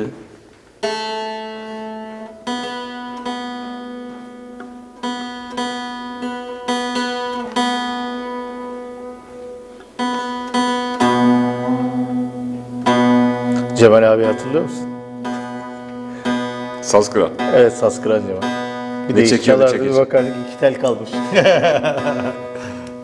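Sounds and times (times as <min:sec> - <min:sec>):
plucked long-necked lute notes: 0:00.8 - 0:23.0
open-string drone: 0:10.7 - 0:20.4.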